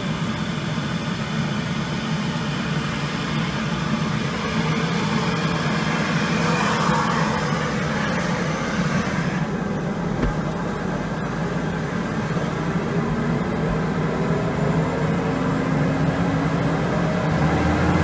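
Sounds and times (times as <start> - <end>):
helicopter engine and rotor drone: 0.0 - 17.5.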